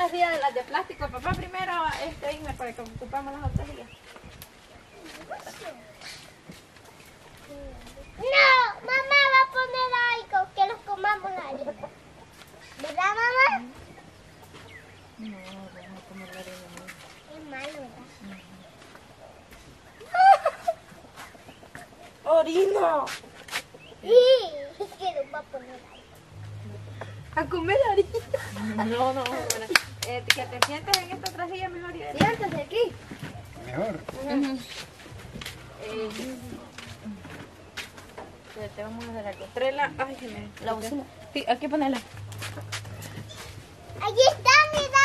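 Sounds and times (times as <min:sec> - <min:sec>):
hands clapping: 0:29.2 - 0:31.5.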